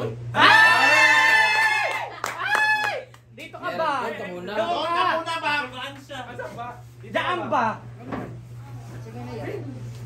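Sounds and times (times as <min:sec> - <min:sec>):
people talking: 0:03.4 - 0:10.0.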